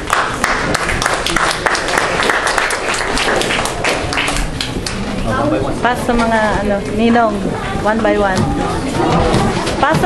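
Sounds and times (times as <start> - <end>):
people applauding: 0.0 - 5.2.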